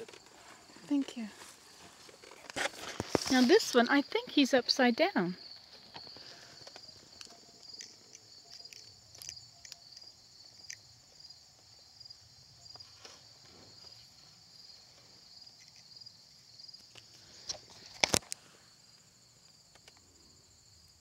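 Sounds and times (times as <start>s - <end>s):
insects trilling: 0.0s - 21.0s.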